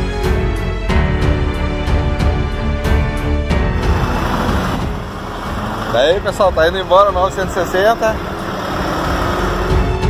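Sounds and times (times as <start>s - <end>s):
truck diesel engine pulling away: 3.5s - 10.0s.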